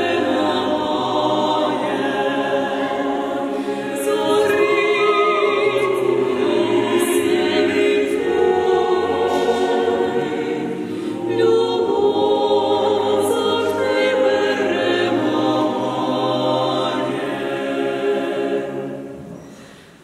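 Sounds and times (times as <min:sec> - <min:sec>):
choir singing a cappella: 0:00.0 - 0:19.8.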